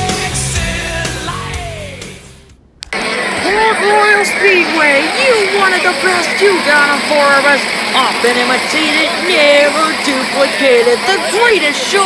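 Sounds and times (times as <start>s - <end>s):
rock music: 0.0s - 3.6s
announcer speaking: 3.3s - 12.0s.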